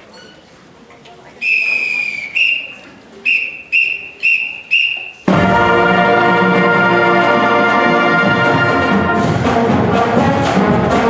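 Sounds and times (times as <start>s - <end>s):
whistle blasts: 1.4s - 5.3s
brass band playing: 4.2s - 11.0s.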